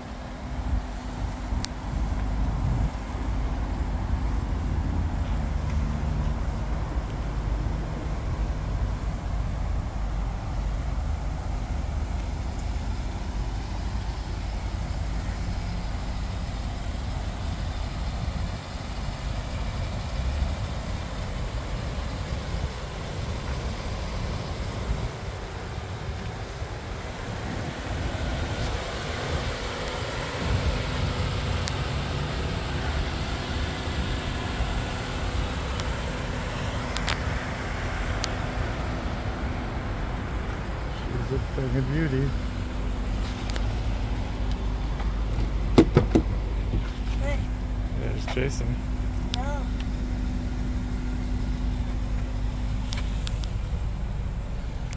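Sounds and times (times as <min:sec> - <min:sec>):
traffic rumble: 0:00.0 - 0:54.9.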